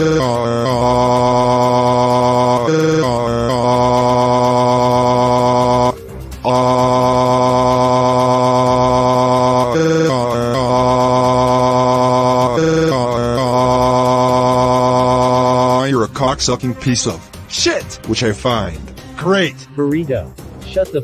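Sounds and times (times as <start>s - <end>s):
man screaming long aaaah: 0.0s - 15.9s.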